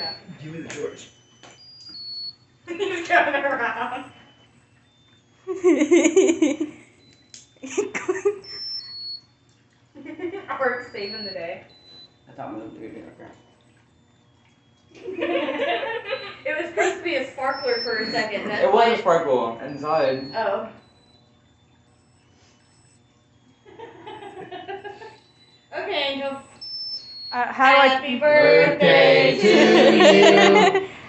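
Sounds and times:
high electronic buzzer melody: 0:00.0 - 0:09.4, 0:10.1 - 0:31.0
person laughing: 0:05.5 - 0:06.8, 0:07.6 - 0:08.4, 0:29.3 - 0:31.0.

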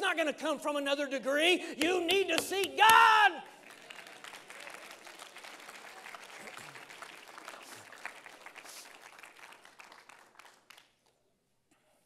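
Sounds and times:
congregation applauding: 0:01.8 - 0:11.2.

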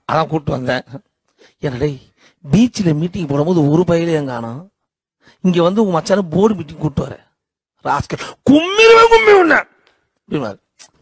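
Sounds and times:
man speaking into microphone: 0:00.0 - 0:11.0
man wailing cry: 0:08.5 - 0:09.7.

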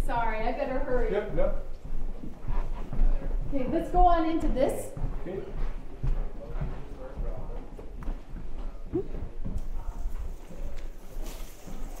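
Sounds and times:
footsteps on a wooden floor: 0:00.7 - 0:12.0.

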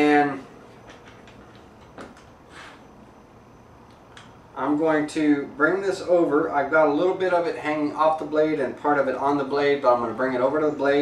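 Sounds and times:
brief scrape on saw table: 0:02.5 - 0:02.9.

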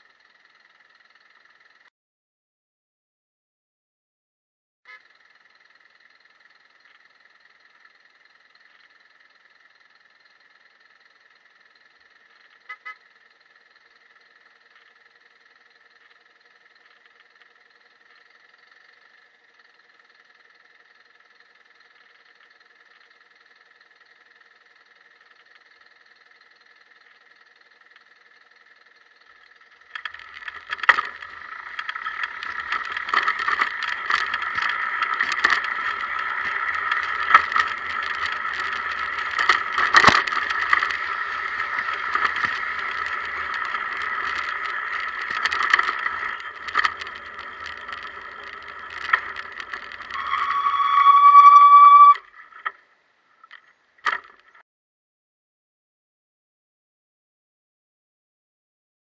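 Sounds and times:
faint steady whine: 0:04.9 - 0:54.5.

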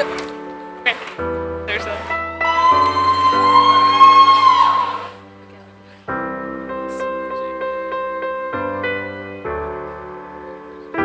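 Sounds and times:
guitar background music: 0:00.0 - 0:11.0.

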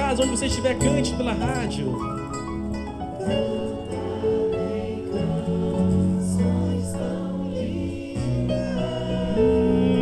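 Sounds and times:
plucked guitar music: 0:00.0 - 0:06.9.

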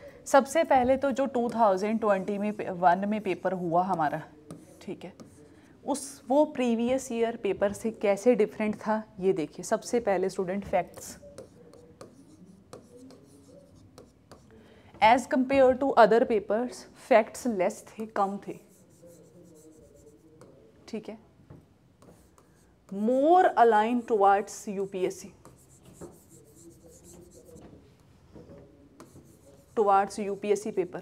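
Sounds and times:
marker tapping whiteboard: 0:03.9 - 0:05.4, 0:10.8 - 0:14.4, 0:22.0 - 0:23.0, 0:25.4 - 0:27.7, 0:28.4 - 0:29.7
pen scratching on board: 0:03.9 - 0:05.5, 0:10.9 - 0:14.5, 0:18.0 - 0:20.6, 0:22.0 - 0:23.0, 0:24.8 - 0:27.6, 0:29.0 - 0:30.8
marker squeaking on whiteboard: 0:10.9 - 0:14.5, 0:18.0 - 0:20.6, 0:24.7 - 0:27.8, 0:28.5 - 0:31.0.

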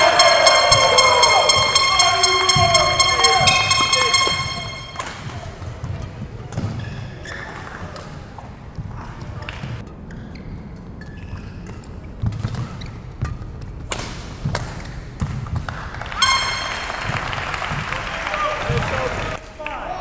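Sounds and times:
people shouting and cheering: 0:00.0 - 0:05.6, 0:16.2 - 0:20.0
racket striking shuttlecock: 0:00.1 - 0:05.6.

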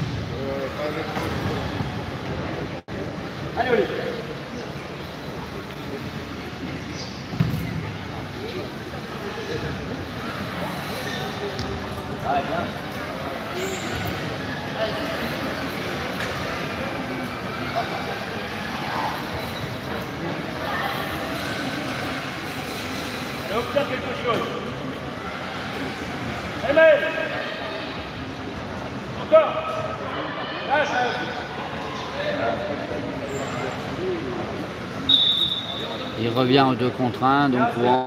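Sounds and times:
voices and shouts echoing: 0:23.3 - 0:38.0.

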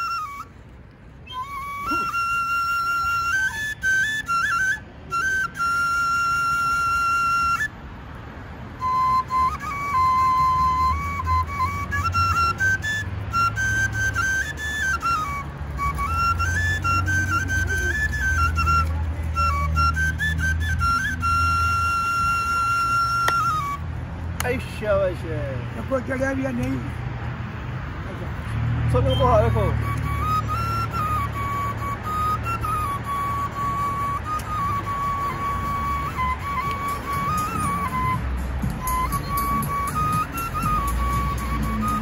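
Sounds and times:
small flute playing: 0:00.0 - 0:07.9, 0:08.7 - 0:24.0, 0:29.0 - 0:42.0.

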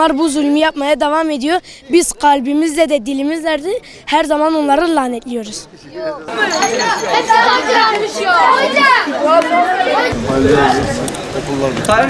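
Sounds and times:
children chattering and calling out: 0:00.0 - 0:11.7.

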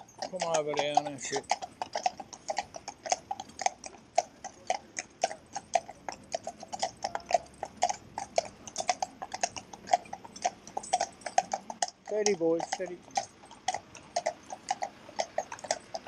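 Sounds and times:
horse hooves clip-clopping on tarmac: 0:00.0 - 0:16.0.

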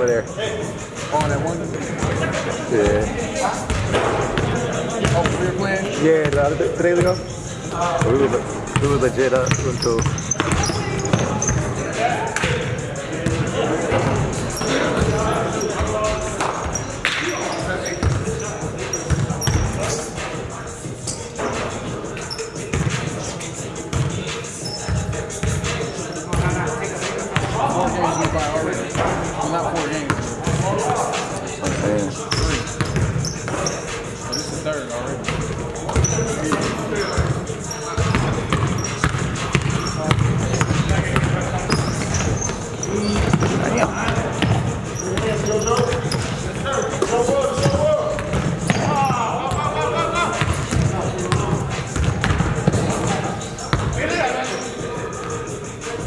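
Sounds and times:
players calling out: 0:00.2 - 0:56.0.

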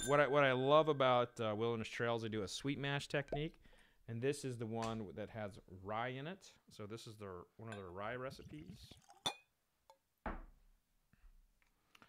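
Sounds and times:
glass clink: 0:00.0 - 0:01.1, 0:09.0 - 0:09.5.

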